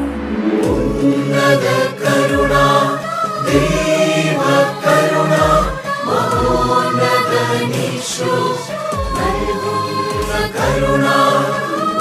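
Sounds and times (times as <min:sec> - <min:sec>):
deep bass notes: 0:00.0 - 0:02.8, 0:03.5 - 0:04.1, 0:05.4 - 0:07.2
instrumental accompaniment: 0:00.0 - 0:12.0
choir singing a hymn: 0:00.5 - 0:12.0.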